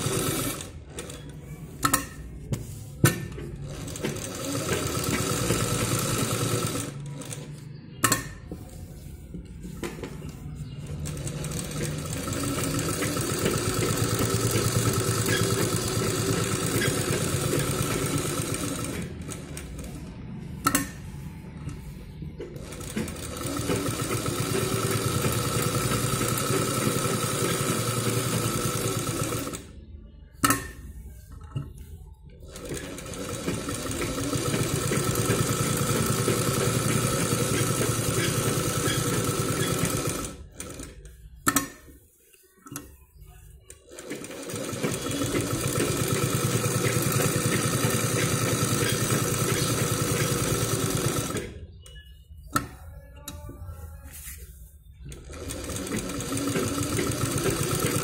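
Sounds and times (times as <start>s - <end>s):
sewing machine stitching cloth: 0.0s - 7.6s, 10.8s - 20.1s, 22.5s - 29.8s, 32.4s - 41.8s, 43.8s - 51.6s, 55.0s - 58.0s.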